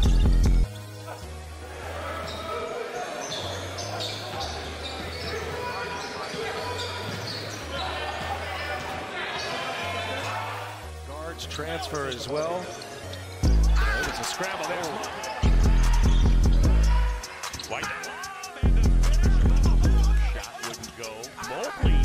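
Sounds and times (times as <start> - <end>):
instrumental beat with bass: 0.0 - 0.7, 13.4 - 14.4, 15.0 - 22.0
crowd voices: 0.6 - 22.0
sneaker squeaks: 2.2 - 9.6, 12.0 - 13.4.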